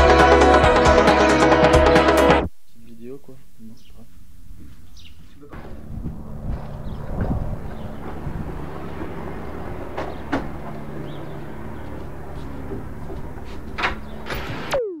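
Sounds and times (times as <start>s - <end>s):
short falling tone: 9.2s - 15.0s.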